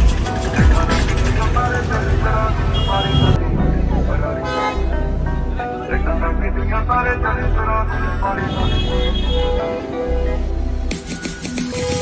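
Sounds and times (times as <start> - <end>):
street traffic: 0.0 - 12.0
vehicle horns honking: 2.6 - 3.4, 4.4 - 5.0, 8.4 - 9.8.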